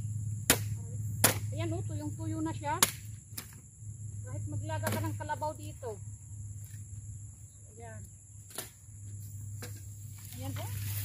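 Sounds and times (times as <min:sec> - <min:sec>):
machete chopping branches: 0:00.4 - 0:01.6, 0:02.7 - 0:03.6, 0:04.8 - 0:05.2, 0:08.5 - 0:08.8.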